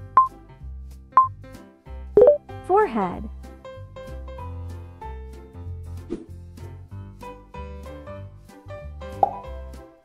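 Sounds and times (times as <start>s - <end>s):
light children's music: 0.0s - 10.0s
pop sound effect dropping in pitch: 2.2s - 2.4s, 9.2s - 9.5s.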